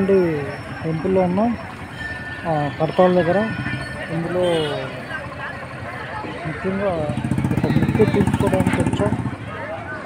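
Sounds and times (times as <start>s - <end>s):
man talking: 6.3s - 9.2s.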